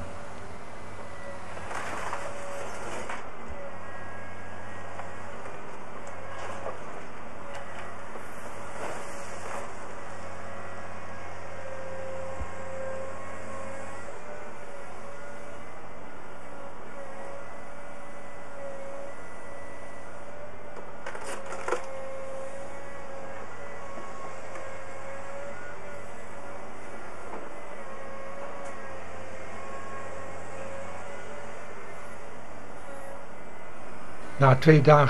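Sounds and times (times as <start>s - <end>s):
excavator whine and engine drone: 0.0s - 35.0s.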